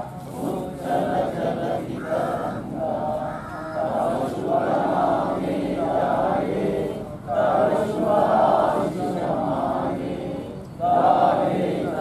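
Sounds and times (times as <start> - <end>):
men singing in unison: 0.0 - 12.0.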